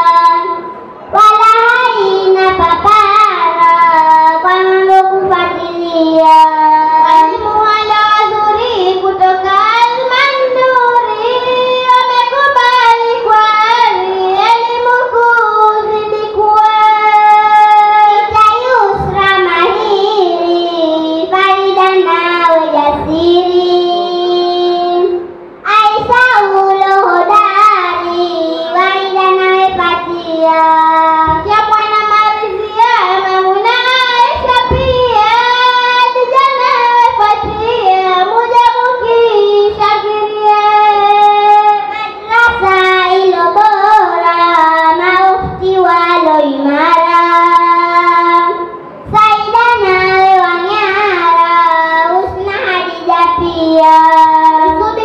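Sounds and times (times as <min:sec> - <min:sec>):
girl singing into a microphone: 0:00.0 - 0:55.0.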